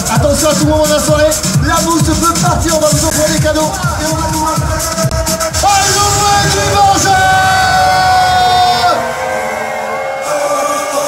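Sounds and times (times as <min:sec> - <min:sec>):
low pop beat: 0:00.0 - 0:11.0
person singing long note: 0:05.6 - 0:11.0.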